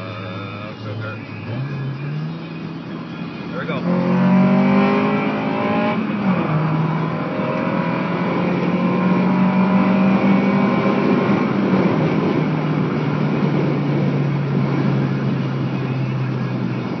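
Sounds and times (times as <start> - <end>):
car engine while driving: 0.0 - 17.0
road noise inside car: 0.0 - 17.0.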